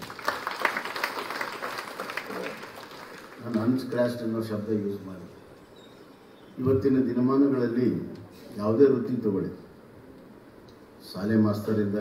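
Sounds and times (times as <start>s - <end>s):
audience applauding: 0.0s - 4.2s.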